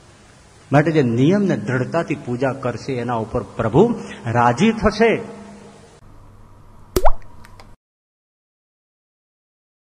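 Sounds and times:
tape hiss: 0.0s - 7.8s
sharp pop with rising pitch: 7.0s - 7.8s.

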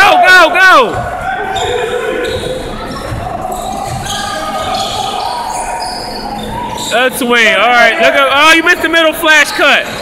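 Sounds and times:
distant voices in a hall: 0.0s - 10.0s
basketball bouncing on court: 0.8s - 5.0s.

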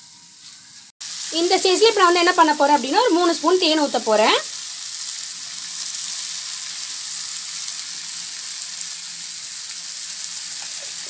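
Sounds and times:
vegetables sizzling in a frying pan: 0.0s - 11.0s.

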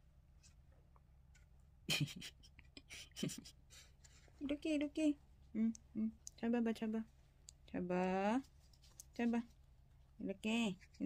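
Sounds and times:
scratchy rustles and scrapes: 8.3s - 9.6s.

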